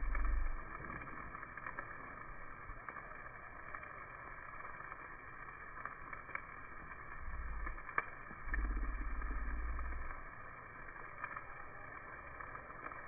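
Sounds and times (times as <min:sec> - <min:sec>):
low rumble: 0:00.0 - 0:04.2, 0:05.0 - 0:12.6
meat sizzling on a grill: 0:00.0 - 0:13.0.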